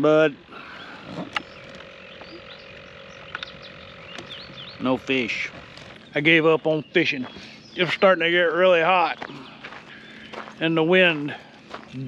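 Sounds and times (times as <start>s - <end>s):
faint steady hum: 0.0s - 12.0s
sharp click: 3.3s - 4.4s.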